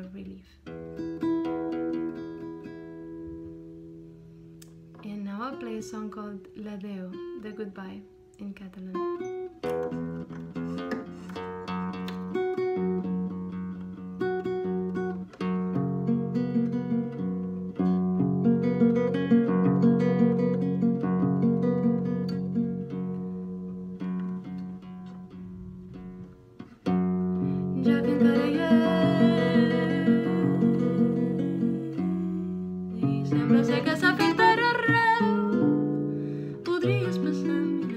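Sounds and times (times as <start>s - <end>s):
fingerpicked classical guitar: 0.0s - 37.9s
woman singing: 27.6s - 35.9s, 36.5s - 37.9s.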